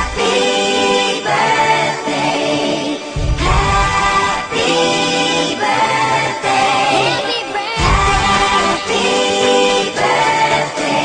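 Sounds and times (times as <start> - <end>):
voices singing in harmony: 0.0 - 11.0.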